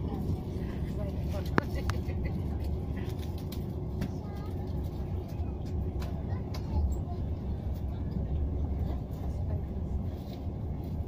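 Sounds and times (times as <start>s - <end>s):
train rumbling inside carriage: 0.0s - 11.0s.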